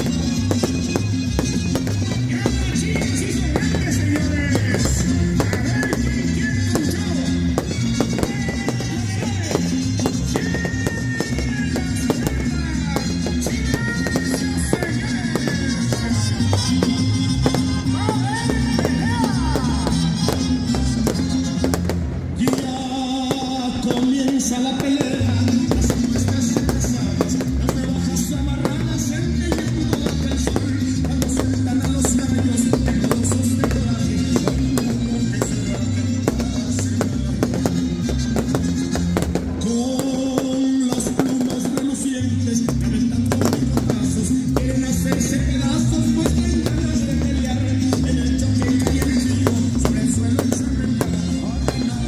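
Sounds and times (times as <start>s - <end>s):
fireworks bangs and crackles: 0.0s - 52.0s
music with singing: 0.0s - 52.0s.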